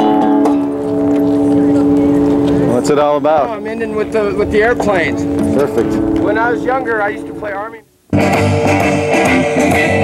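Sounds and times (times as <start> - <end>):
harmonica chord: 0.0 - 10.0.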